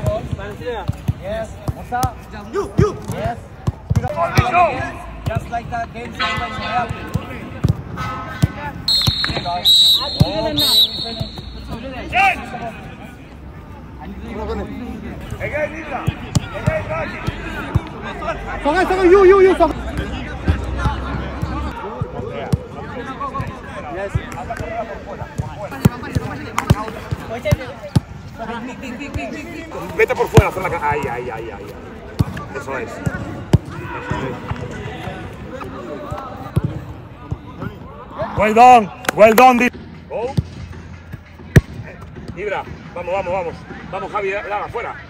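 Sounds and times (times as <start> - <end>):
players calling out: 2.5 - 13.2.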